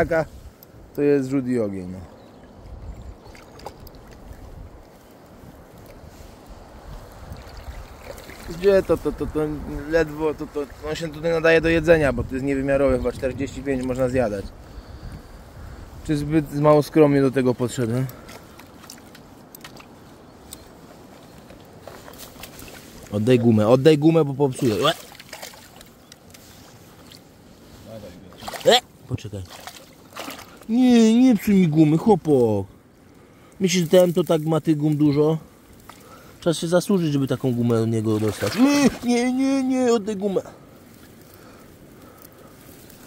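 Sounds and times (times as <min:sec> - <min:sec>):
low wind rumble on microphone: 0:01.9 - 0:18.5
river water lapping around net: 0:02.2 - 0:08.7, 0:18.2 - 0:21.1, 0:21.7 - 0:23.2, 0:24.5 - 0:30.7, 0:38.0 - 0:39.2
small clicks and rustles: 0:17.9 - 0:23.3, 0:25.2 - 0:27.3
low background hiss: 0:18.9 - 0:43.0.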